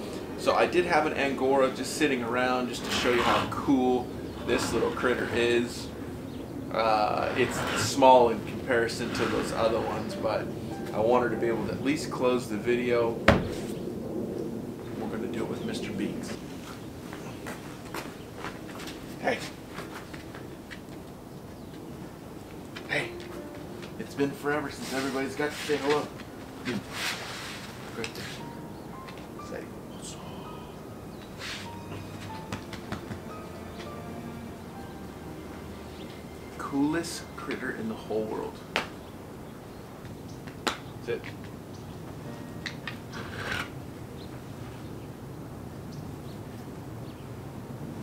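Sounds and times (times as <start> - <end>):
low steady background noise: 0.0 - 48.0.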